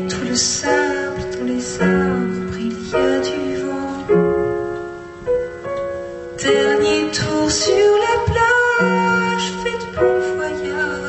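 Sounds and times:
woman singing: 0.0 - 4.6, 6.4 - 11.0.

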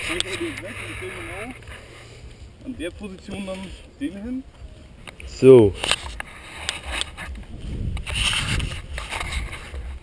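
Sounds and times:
rubbing and rustling: 5.8 - 10.0
wind rumble on microphone: 6.1 - 10.0.

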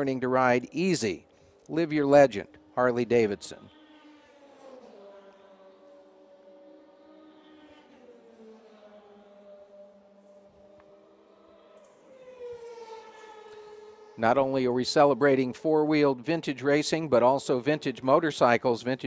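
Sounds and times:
distant race car engine: 1.2 - 15.4.

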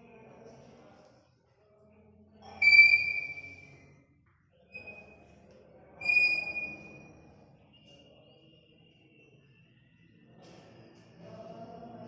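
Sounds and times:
chalk squeaking on blackboard: 2.5 - 3.7.

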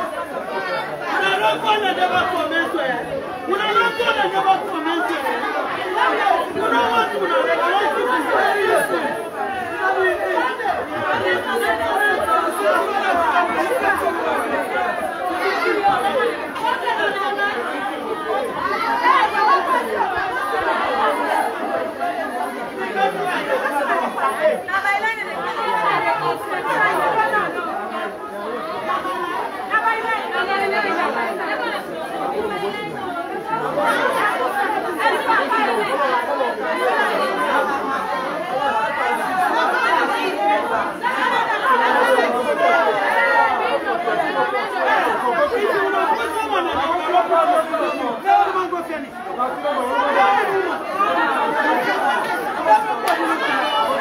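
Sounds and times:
crowd babble: 0.0 - 54.0.

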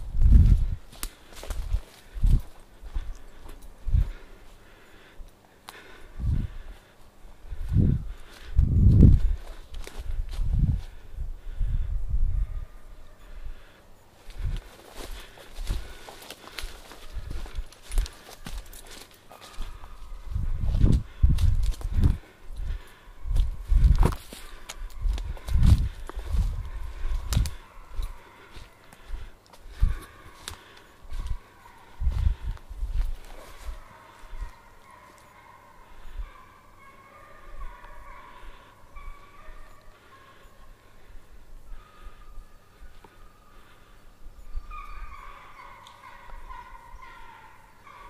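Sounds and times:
twigs crackling and snapping: 0.9 - 3.7, 9.4 - 10.4, 14.3 - 20.0, 20.8 - 31.4
low microphone rumble: 7.4 - 12.8
hounds baying: 12.3 - 21.2, 21.8 - 48.0.

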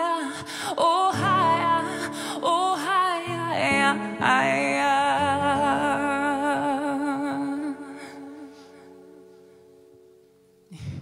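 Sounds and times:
woman singing with vibrato: 0.0 - 9.5.

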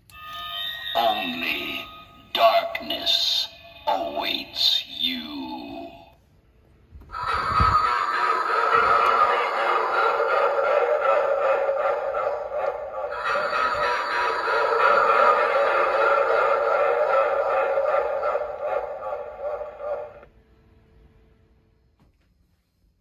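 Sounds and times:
spooky music and voice from small speaker: 0.1 - 6.2, 7.1 - 20.2.

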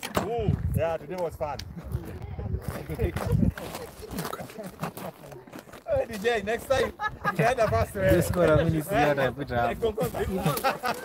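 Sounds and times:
voices: 0.0 - 11.0
person laughing: 6.8 - 7.9, 10.3 - 11.0.

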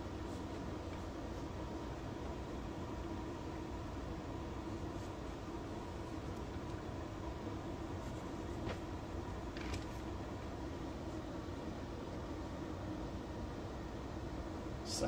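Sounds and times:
room hum and hiss: 0.0 - 15.0.

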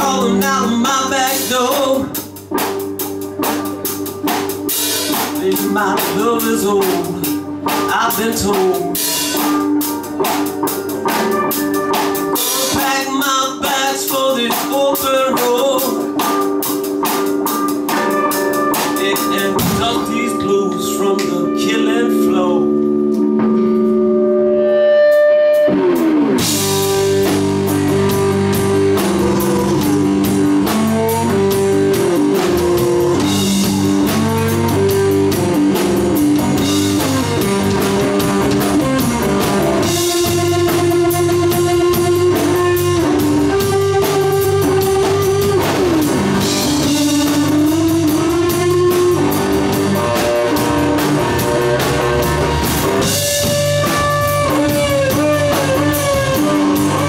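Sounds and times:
drum kit steady beat: 0.0 - 24.2, 25.1 - 57.0
bass guitar: 0.0 - 57.0
electric guitar: 0.0 - 57.0
live blues band playing: 0.0 - 57.0.

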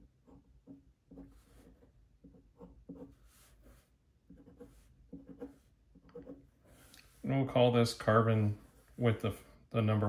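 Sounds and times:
pen scratching on paper: 0.0 - 7.2.

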